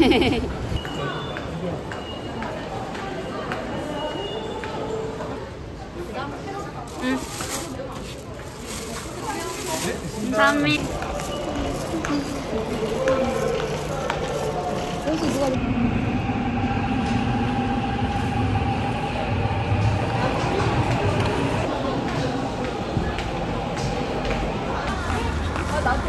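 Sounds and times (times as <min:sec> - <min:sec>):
station voices: 0:10.0 - 0:26.0
train electric whine: 0:10.9 - 0:24.4.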